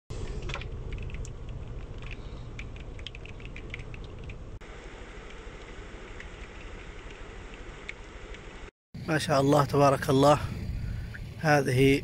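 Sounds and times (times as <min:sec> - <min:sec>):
steady low rumble: 0:00.1 - 0:12.0.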